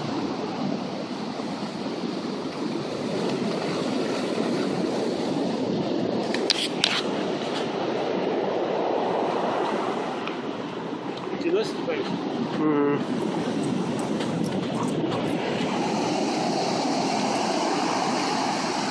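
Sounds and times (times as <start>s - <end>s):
ocean surf breaking: 0.0s - 18.9s.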